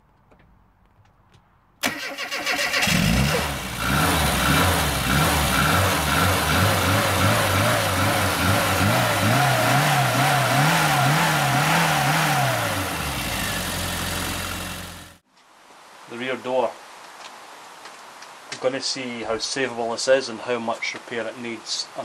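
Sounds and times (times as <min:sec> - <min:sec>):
car engine revving: 0:01.8 - 0:15.2.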